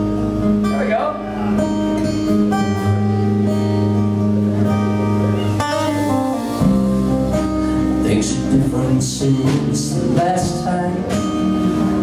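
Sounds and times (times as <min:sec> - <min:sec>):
bass guitar: 0:00.0 - 0:12.0
drums: 0:00.0 - 0:12.0
strummed acoustic guitar: 0:00.0 - 0:12.0.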